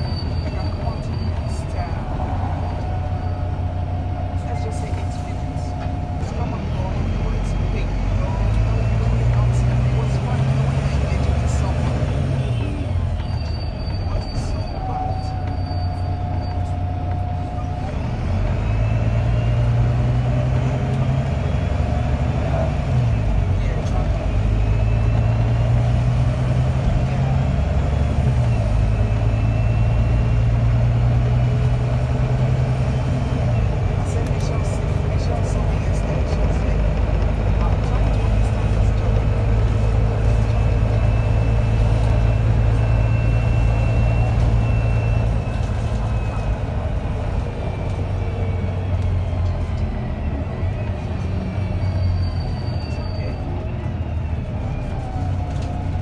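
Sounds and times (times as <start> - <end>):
bus diesel engine under load: 0.0 - 56.0.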